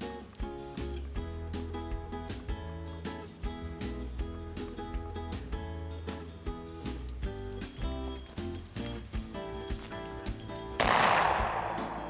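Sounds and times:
background music: 0:00.0 - 0:12.0
shotgun shot: 0:10.8 - 0:12.0.

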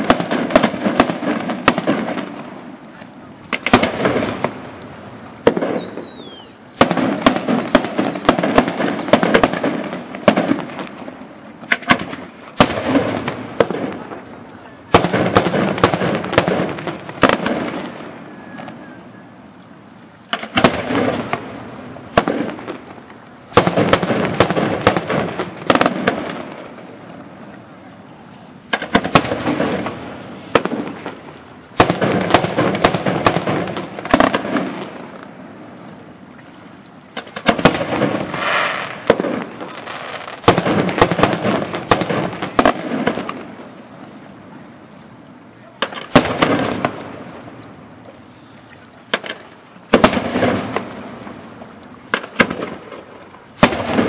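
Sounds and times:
firework bangs: 0:00.0 - 0:18.9, 0:20.2 - 0:27.4, 0:28.6 - 0:35.8, 0:37.2 - 0:43.7, 0:45.8 - 0:47.6, 0:49.1 - 0:51.4, 0:52.1 - 0:54.0
firework crackling: 0:00.0 - 0:19.4, 0:20.2 - 0:36.2, 0:37.1 - 0:44.1, 0:45.4 - 0:47.7, 0:49.1 - 0:54.0.

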